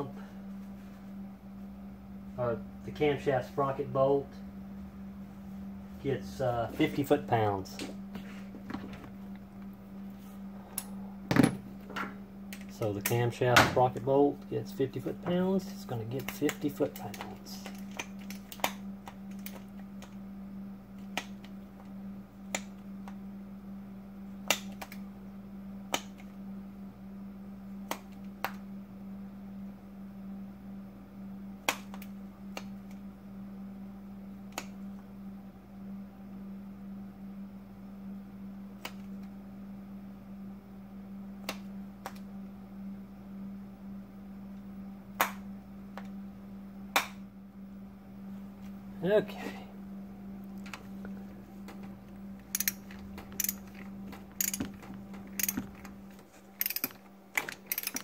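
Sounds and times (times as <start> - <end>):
steady low hum: 0.0 - 58.0
hand tools clicking and tapping: 52.5 - 55.9, 56.6 - 58.0.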